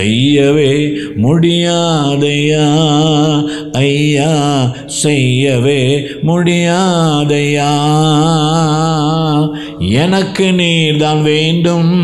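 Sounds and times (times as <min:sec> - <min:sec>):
man singing worship song: 0:00.0 - 0:12.0.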